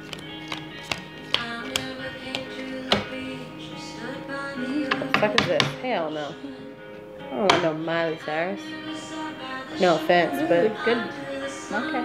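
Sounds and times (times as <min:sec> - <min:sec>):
song playing in background: 0:00.0 - 0:12.0.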